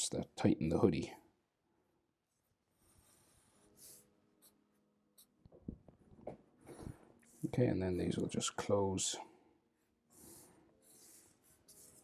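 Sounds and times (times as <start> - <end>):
marker pen scratching on paper: 2.2 - 5.6, 9.8 - 12.0.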